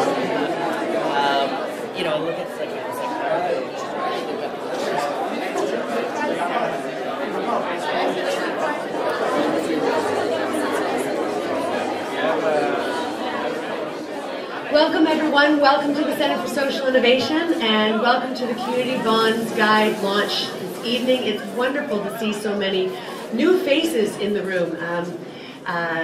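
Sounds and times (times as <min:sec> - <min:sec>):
crowd chatter in echoing hall: 0:00.0 - 0:26.0.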